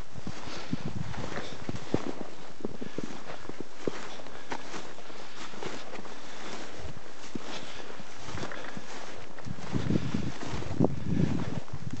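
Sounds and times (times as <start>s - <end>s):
footsteps through snow: 0.0s - 12.0s.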